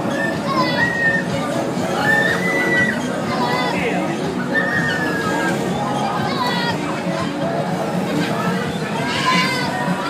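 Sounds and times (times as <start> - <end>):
riders' high drawn-out cries: 0.0 - 6.8
jumble of voices: 0.0 - 10.0.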